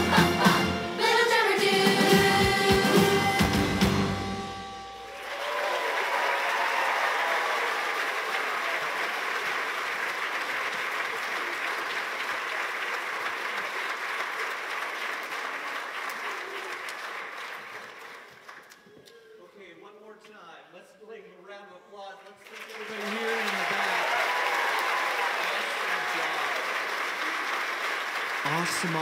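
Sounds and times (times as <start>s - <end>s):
audience applauding: 5.0s - 19.0s, 22.4s - 29.0s.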